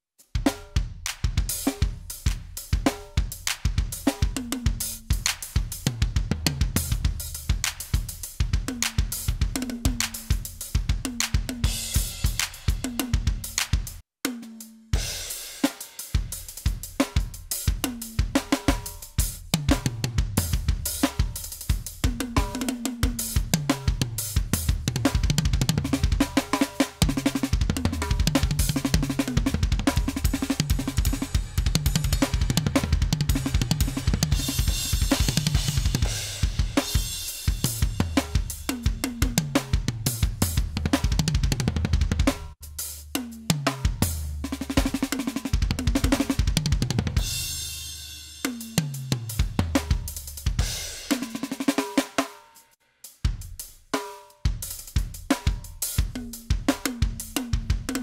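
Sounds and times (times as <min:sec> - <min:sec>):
electronic drum kit grooves: 0:00.2 - 0:58.0.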